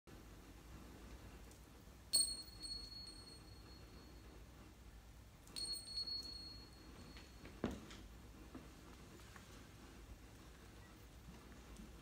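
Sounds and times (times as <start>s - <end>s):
small metallic bell ringing: 2.1s - 4.5s, 5.4s - 7.7s.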